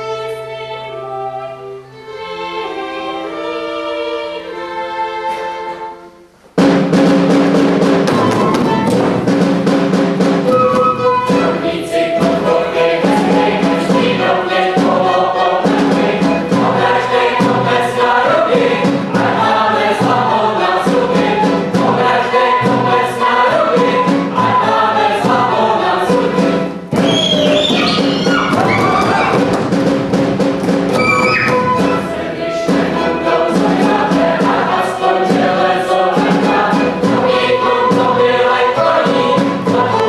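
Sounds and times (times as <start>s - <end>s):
choir singing: 0.0s - 6.2s, 10.4s - 29.7s, 30.8s - 40.0s
instrumental accompaniment: 0.0s - 40.0s.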